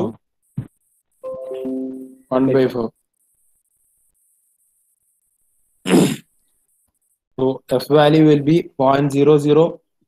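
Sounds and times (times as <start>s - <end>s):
person clearing throat: 5.9s - 6.3s.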